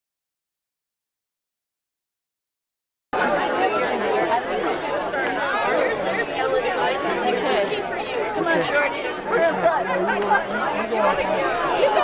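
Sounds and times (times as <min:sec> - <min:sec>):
crowd chattering: 0:03.2 - 0:12.0.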